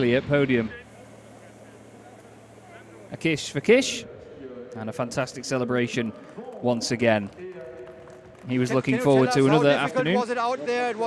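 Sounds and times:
steady low hum: 0:00.0 - 0:06.2.

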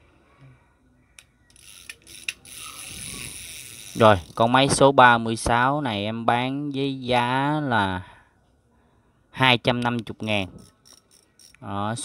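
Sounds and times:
fishing reel clicks: 0:01.2 - 0:04.5, 0:10.6 - 0:11.6
fishing reel gears whirring: 0:01.5 - 0:04.5, 0:10.6 - 0:11.6.

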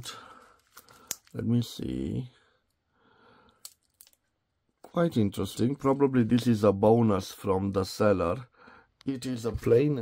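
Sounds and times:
plastic film crinkling: 0:00.2 - 0:01.5.

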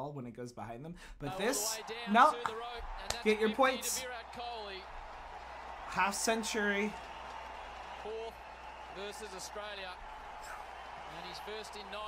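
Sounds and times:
man speaking: 0:00.8 - 0:04.8.

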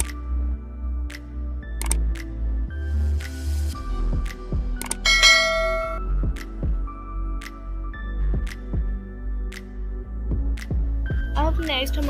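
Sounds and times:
background music with beat: 0:00.0 - 0:12.0
bright bell chime: 0:05.0 - 0:06.0.

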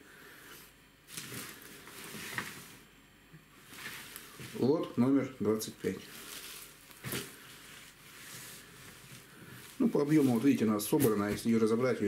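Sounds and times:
fishing net rustling: 0:01.1 - 0:02.8, 0:05.9 - 0:11.3.

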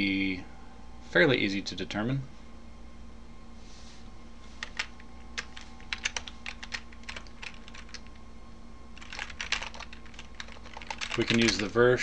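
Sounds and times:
typing on keyboard: 0:04.6 - 0:08.2, 0:09.0 - 0:11.7.

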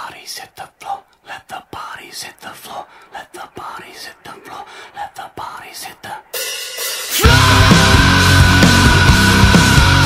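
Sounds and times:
person whispering: 0:00.0 - 0:06.4.

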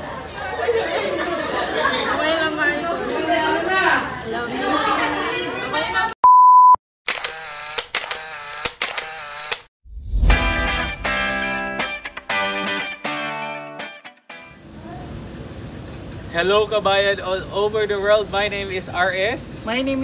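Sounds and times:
steady electronic beep: 0:06.2 - 0:06.8.

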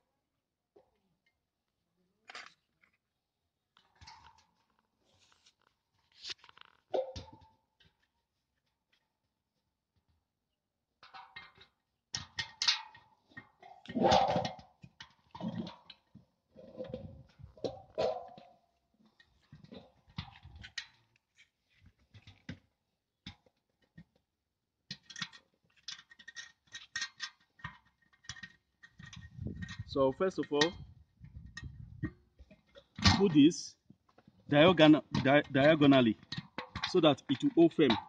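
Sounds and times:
metal bracket clicks and scrapes: 0:24.9 - 0:29.9.

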